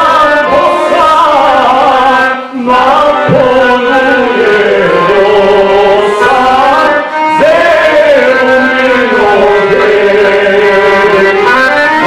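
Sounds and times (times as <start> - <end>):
man singing folk song: 0.0 - 11.4.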